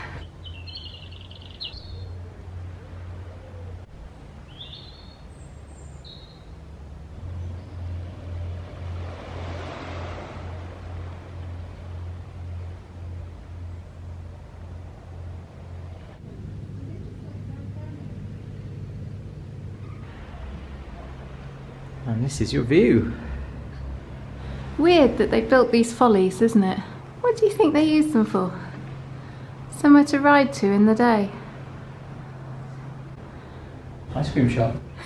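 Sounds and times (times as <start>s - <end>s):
low pulsing drone: 0.0s - 35.0s.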